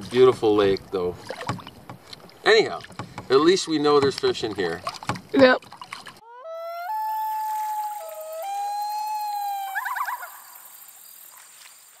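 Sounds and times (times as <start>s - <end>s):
loon wailing call: 6.2s - 10.8s.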